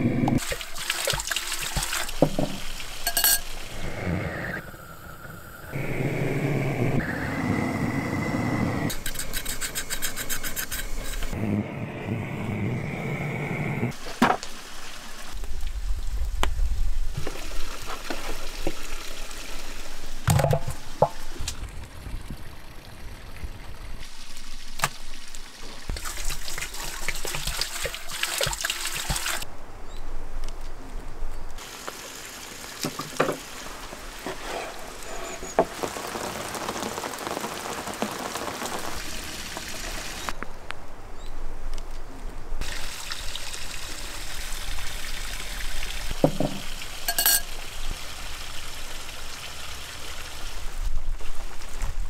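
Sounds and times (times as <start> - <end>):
water pouring into pot: 25.9 - 29.4.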